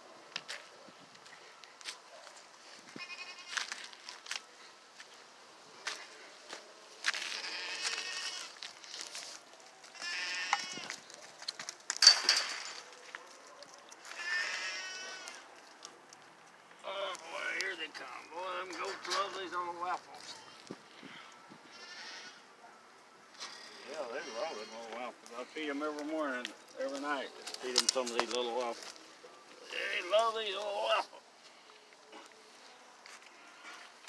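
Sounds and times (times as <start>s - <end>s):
goats bleating: 3.0s - 3.7s, 7.1s - 8.7s, 10.0s - 11.0s, 14.0s - 15.5s, 20.2s - 22.5s, 23.7s - 25.0s, 33.2s - 34.0s.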